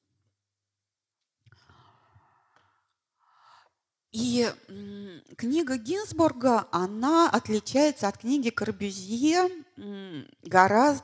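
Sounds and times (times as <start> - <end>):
faint breath into microphone: 1.5 - 3.8.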